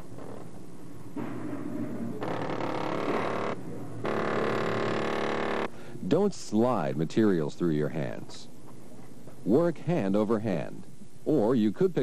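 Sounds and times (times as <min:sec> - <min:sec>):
power tool motor buzzing: 0:02.2 - 0:05.7.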